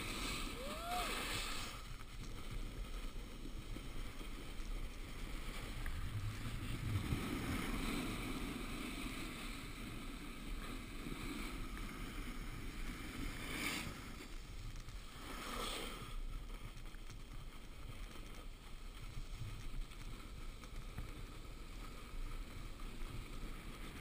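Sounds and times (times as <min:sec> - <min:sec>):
wind on microphone: 0:00.0 - 0:16.2
snowboard scraping on snow: 0:00.0 - 0:24.0.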